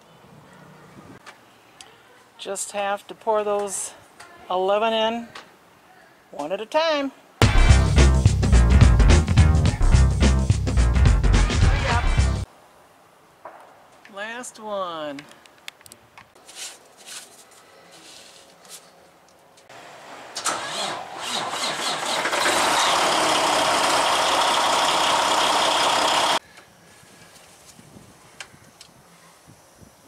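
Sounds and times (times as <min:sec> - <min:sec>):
diesel engine starting and idling: 0:19.8 - 0:26.4.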